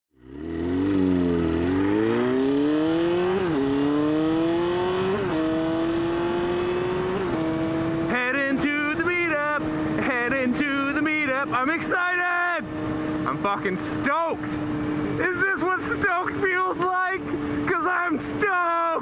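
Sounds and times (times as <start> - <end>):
motorcycle engine accelerating: 0.1 - 18.4
man's voice: 8.1 - 12.7, 13.3 - 14.6, 15.2 - 19.0.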